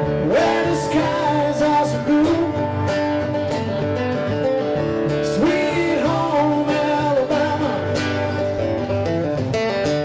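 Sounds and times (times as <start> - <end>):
live band with guitar: 0.0 - 10.0.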